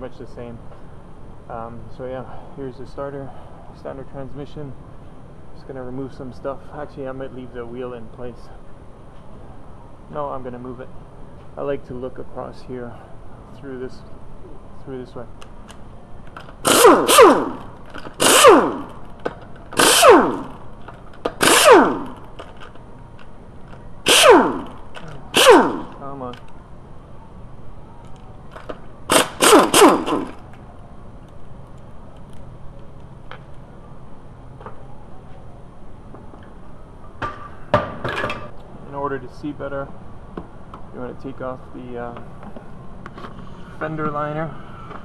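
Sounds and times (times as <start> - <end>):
impact wrench bursts: 16.4 - 22.7, 24.0 - 26.2, 29.1 - 30.5.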